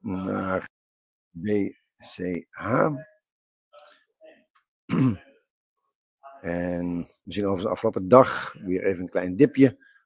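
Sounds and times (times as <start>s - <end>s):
man clearing his throat: 4.9s - 5.4s.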